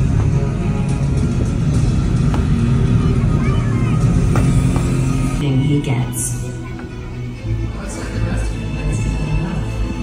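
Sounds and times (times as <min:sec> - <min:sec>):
soundtrack music with rumbling bass: 0:00.0 - 0:10.0.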